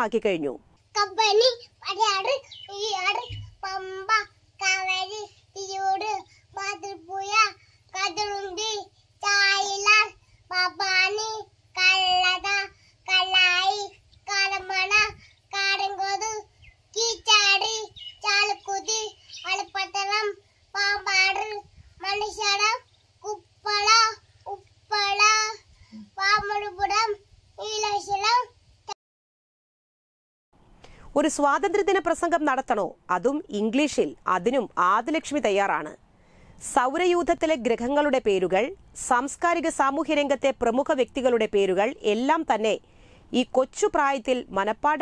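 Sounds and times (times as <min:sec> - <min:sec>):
toddler girl chanting: 0:00.9 - 0:28.6.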